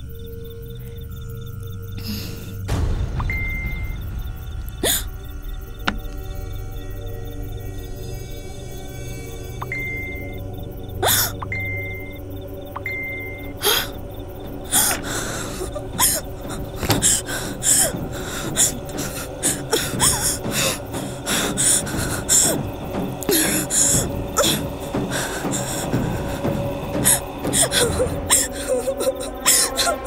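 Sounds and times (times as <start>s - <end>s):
tense background music: 0.0s - 30.0s
woman gasping and breathing hard: 13.6s - 14.0s, 14.6s - 30.0s.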